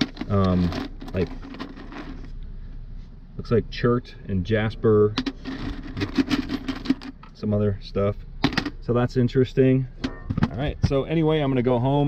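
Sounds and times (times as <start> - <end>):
rocks rattling in metal bucket: 0.0 - 2.2.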